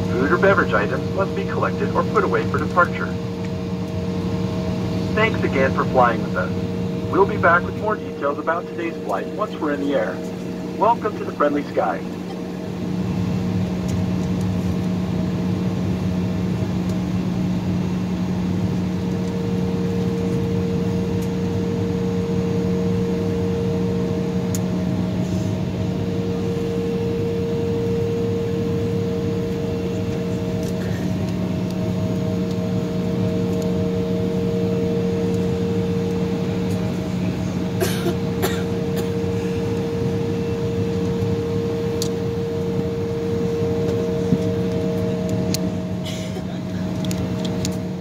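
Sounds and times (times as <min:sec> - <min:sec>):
cabin air conditioning: 0:00.0 - 0:48.0
jet engines idling hum: 0:00.0 - 0:48.0.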